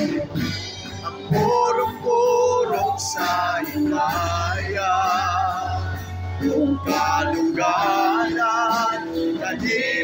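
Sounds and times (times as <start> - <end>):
acoustic guitar: 0.0 - 10.0
electric bass: 0.0 - 10.0.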